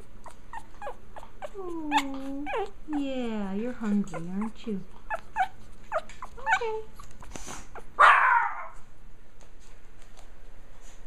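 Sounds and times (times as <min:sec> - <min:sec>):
puppy yelping: 0:00.0 - 0:08.8.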